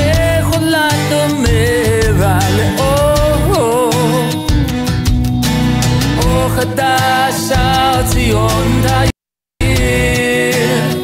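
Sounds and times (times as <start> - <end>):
song with instruments: 0.0 - 11.0.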